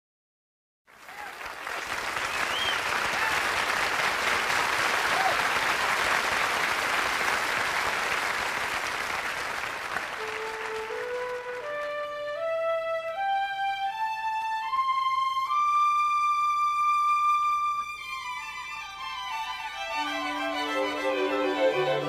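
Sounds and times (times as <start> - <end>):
audience applauding: 0.9 - 12.4
whistles from audience: 2.2 - 3.3
band playing held rising notes: 10.2 - 22.0.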